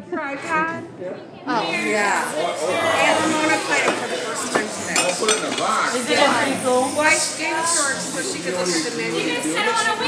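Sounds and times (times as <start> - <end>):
background talk: 0.0 - 10.0
dishes and cutlery clinking: 3.4 - 6.3.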